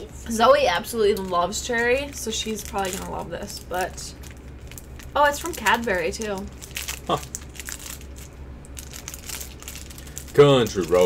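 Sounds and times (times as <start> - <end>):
plastic wrapper crinkling: 1.1 - 11.0.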